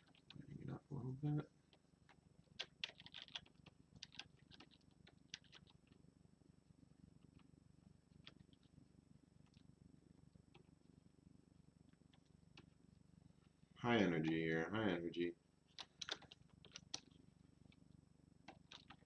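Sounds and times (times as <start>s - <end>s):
faint low hum: 0.0s - 19.0s.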